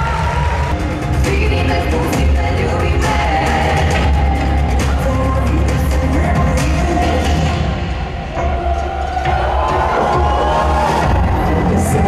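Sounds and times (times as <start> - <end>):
loud live pop music: 0.0 - 12.0
crowd cheering: 8.0 - 12.0.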